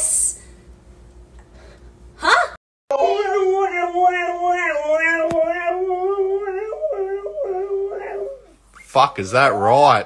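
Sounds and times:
dog howling: 2.9s - 8.6s.

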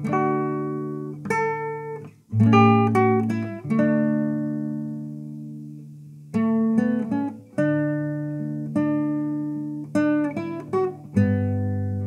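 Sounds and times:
classical guitar chord ringing: 0.0s - 12.0s.

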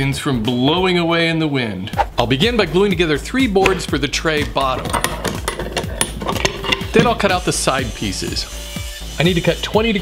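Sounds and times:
wooden boards knocking: 3.6s - 7.2s
metal pipe clamps clicking: 3.6s - 7.3s.

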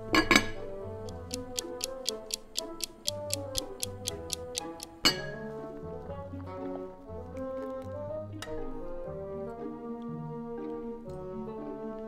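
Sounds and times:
background music: 0.0s - 12.0s
clock ticking: 1.0s - 5.2s.

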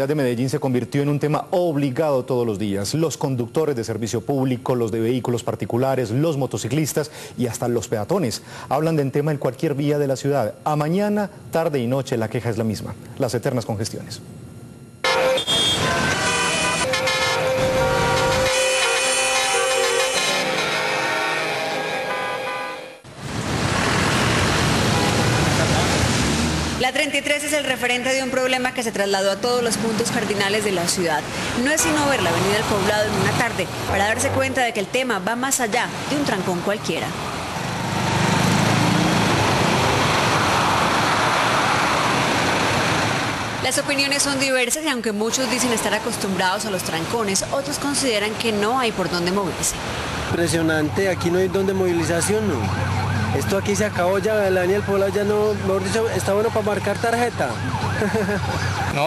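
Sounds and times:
road traffic noise: 14.9s - 59.0s
car horns blaring: 15.0s - 23.0s, 24.8s - 25.9s, 31.6s - 34.9s.

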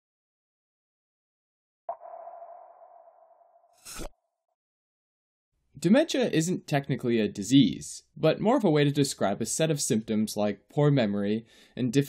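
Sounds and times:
electronic ping: 1.9s - 3.8s.

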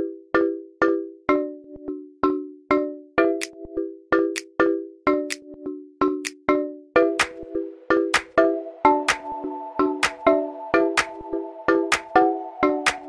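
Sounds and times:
bell-like chime tones: 7.1s - 13.0s.

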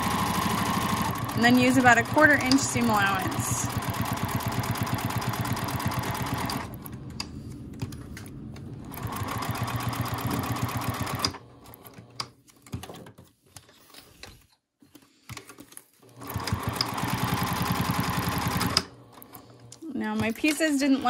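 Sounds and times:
sewing machine stitching: 0.0s - 7.0s, 8.8s - 12.3s, 16.0s - 21.0s.

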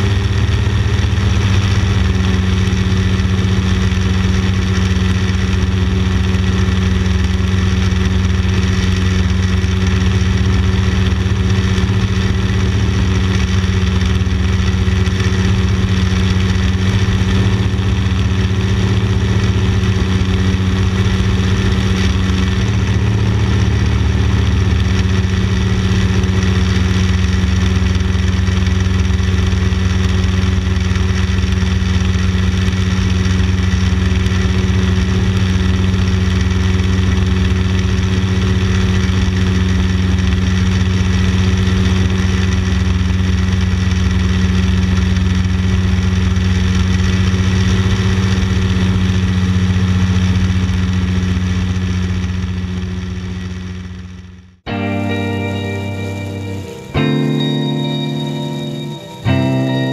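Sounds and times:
light aircraft engine droning: 0.0s - 59.9s.

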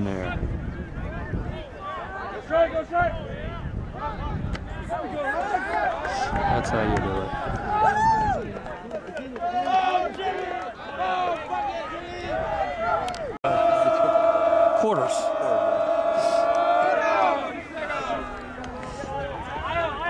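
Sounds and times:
players shouting and cheering: 0.2s - 20.0s.

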